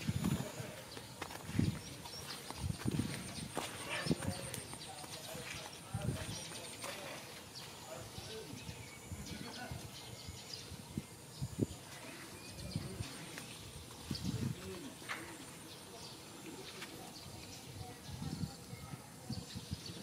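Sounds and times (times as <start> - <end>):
footsteps on sand: 0.0 - 8.2, 16.6 - 17.6
faint voices: 0.0 - 20.0.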